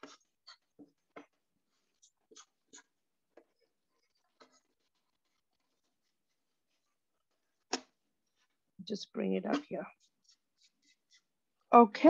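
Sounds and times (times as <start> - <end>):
pencil scratching on paper: 0.0 - 8.6, 9.2 - 11.7.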